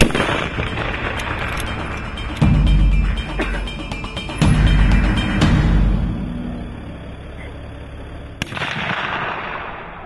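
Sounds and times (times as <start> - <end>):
rifle shot: 0.0 - 1.7, 8.4 - 10.0.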